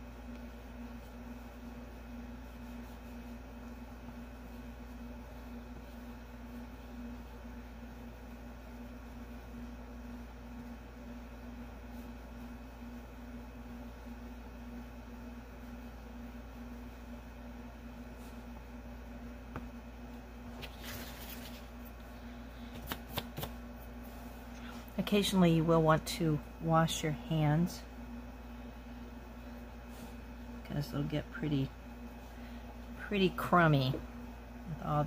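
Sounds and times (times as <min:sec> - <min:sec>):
steady low hum with hiss: 0:00.0 - 0:35.0.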